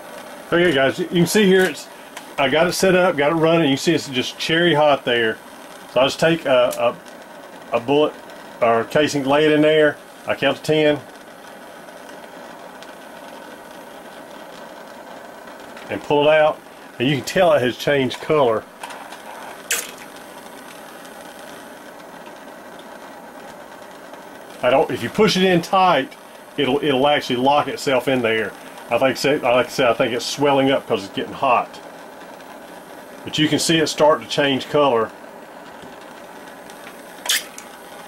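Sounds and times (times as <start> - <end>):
torch flame hissing: 0.0 - 38.0
short sharp click: 37.2 - 37.7.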